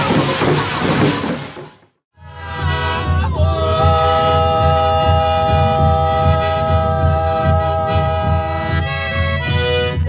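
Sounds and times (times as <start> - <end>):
steady low beat: 2.5 - 10.0.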